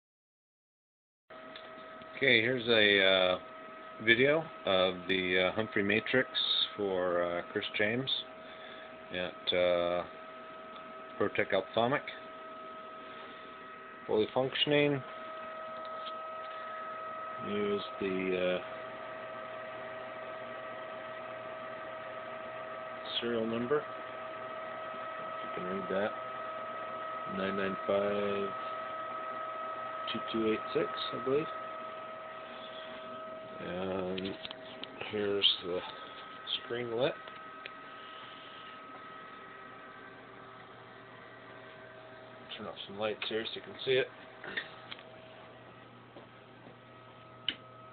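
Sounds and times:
electrical hum: 0:01.3 - 0:47.9
high-pitched whine: 0:01.4 - 0:45.5.

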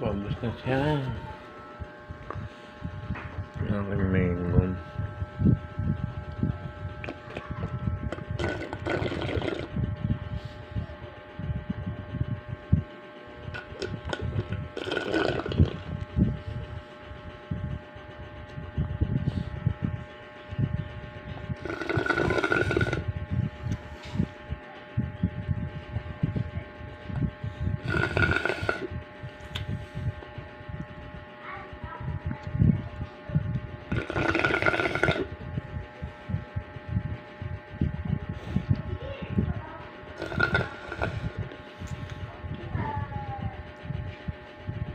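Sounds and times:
person slurping a drink: 0:08.1 - 0:09.8, 0:13.6 - 0:15.8, 0:21.6 - 0:23.1, 0:27.8 - 0:28.9, 0:33.9 - 0:35.3, 0:40.2 - 0:42.0.

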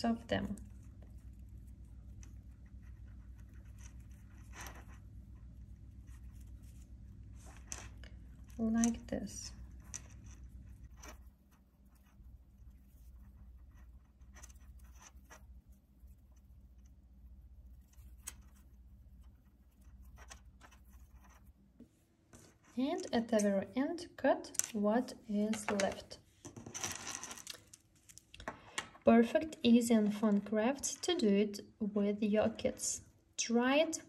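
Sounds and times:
steady low hum: 0:00.0 - 0:26.3
fingers rustling and scraping cord: 0:00.4 - 0:23.6, 0:24.6 - 0:28.9.

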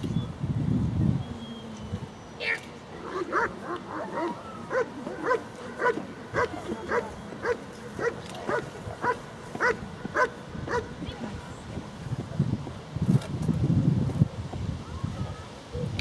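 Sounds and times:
dog barking: 0:03.1 - 0:10.9, 0:15.7 - 0:16.0.

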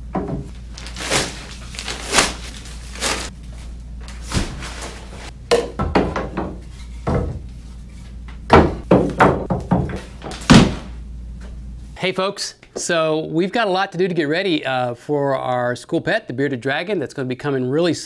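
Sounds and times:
paper bags rustling: 0:00.5 - 0:05.3.

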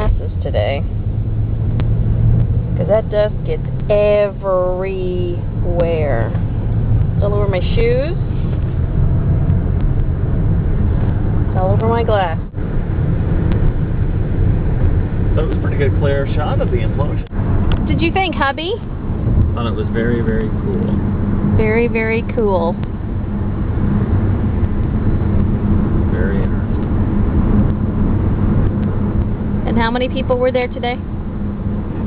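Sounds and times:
car engine rumble: 0:00.0 - 0:32.0
road noise: 0:00.0 - 0:32.0.

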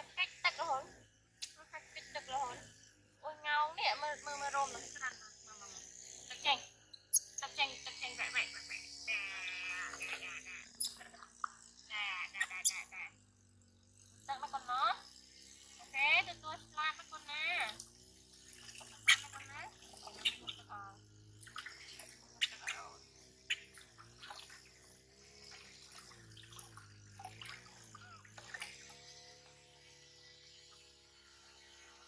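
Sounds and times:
baby monkey squealing: 0:09.3 - 0:11.1, 0:12.2 - 0:13.1, 0:19.0 - 0:20.9
water splashing in steel basin: 0:17.6 - 0:20.6, 0:21.3 - 0:22.7, 0:23.5 - 0:24.8, 0:25.5 - 0:29.0.

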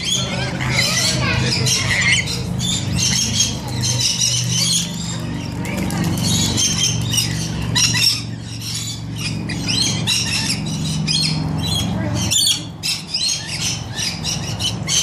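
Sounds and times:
parrots squawking: 0:00.0 - 0:15.0.

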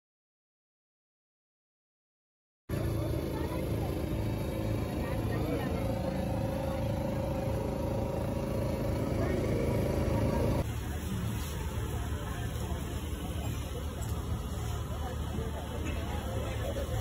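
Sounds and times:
voices: 0:02.7 - 0:17.0.

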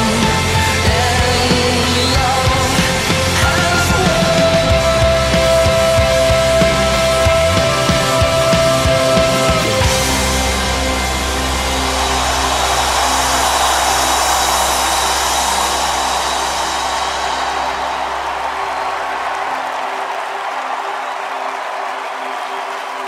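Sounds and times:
cymbals washing: 0:00.0 - 0:20.0
rock band final chord: 0:00.0 - 0:20.0
crowd noise: 0:00.0 - 0:23.0.

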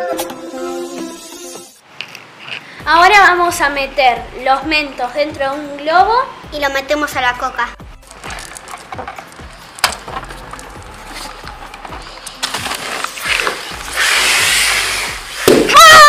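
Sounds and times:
soda foam jet hissing: 0:13.2 - 0:15.9
children shrieking: 0:15.7 - 0:16.0.

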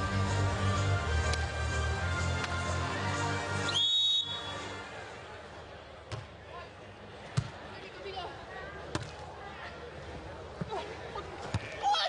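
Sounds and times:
broadcast music: 0:00.0 - 0:05.0.

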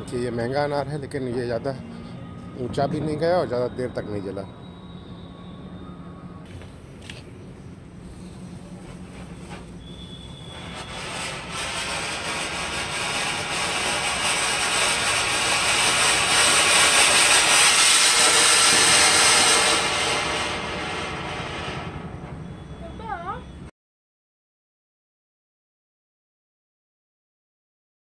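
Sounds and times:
fountain firework hissing: 0:07.7 - 0:22.2.

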